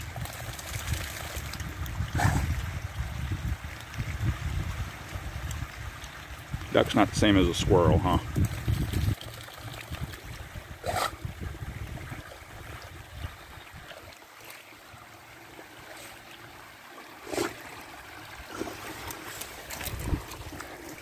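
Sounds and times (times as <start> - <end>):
water trickling over rocks: 0.0 - 21.0.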